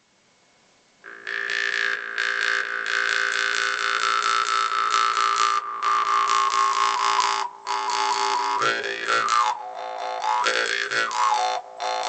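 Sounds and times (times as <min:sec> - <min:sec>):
jaw harp buzzing drone: 0:01.0 - 0:12.0.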